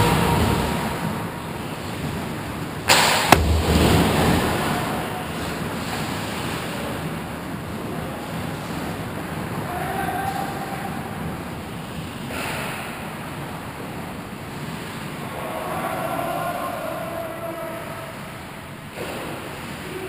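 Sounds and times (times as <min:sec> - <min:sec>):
dull thump: 0:02.9 - 0:04.5
sharp crack: 0:02.9 - 0:05.0.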